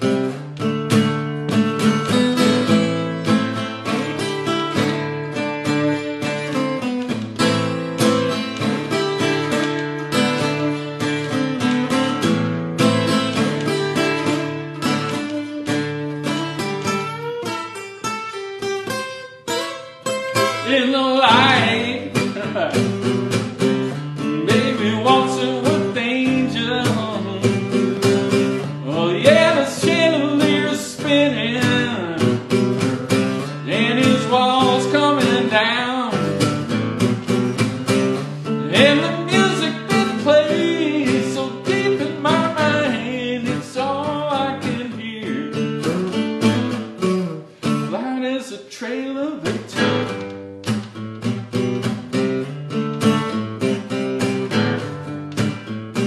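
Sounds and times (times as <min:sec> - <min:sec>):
strummed guitar: 0:00.0 - 0:56.0
man singing: 0:20.4 - 0:36.6, 0:38.4 - 0:46.3, 0:47.7 - 0:50.2.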